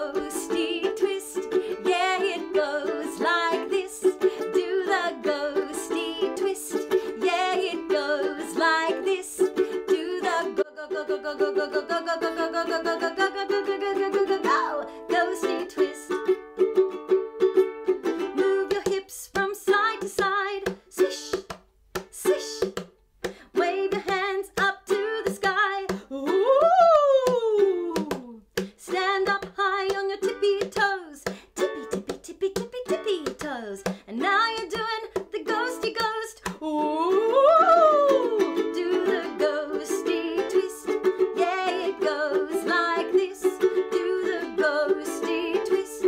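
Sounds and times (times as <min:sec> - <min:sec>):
woman singing: 0:00.0 - 0:16.4, 0:18.2 - 0:46.0
strummed ukulele: 0:00.0 - 0:46.0.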